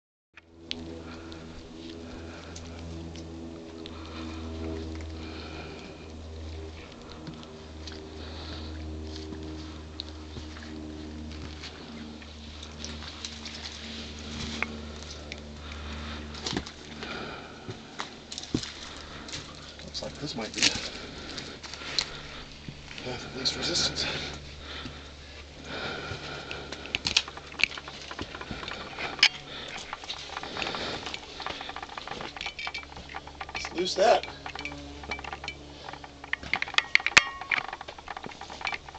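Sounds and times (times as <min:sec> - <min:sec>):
steady low hum: 0:00.4 - 0:38.9
small metal pieces clinking: 0:27.2 - 0:38.9.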